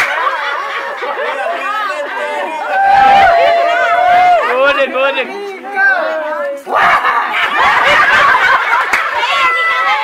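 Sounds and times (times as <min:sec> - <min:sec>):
women laughing: 0:00.1 - 0:02.4, 0:06.8 - 0:09.6.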